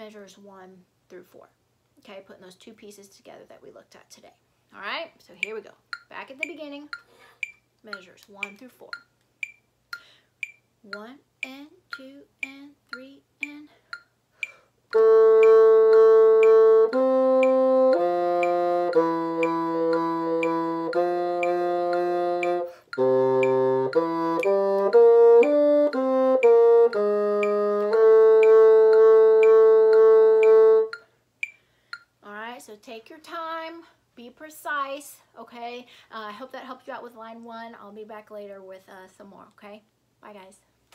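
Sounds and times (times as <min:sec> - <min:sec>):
steady tick: 0:05.4 - 0:32.2
solo bassoon playing: 0:14.9 - 0:31.0.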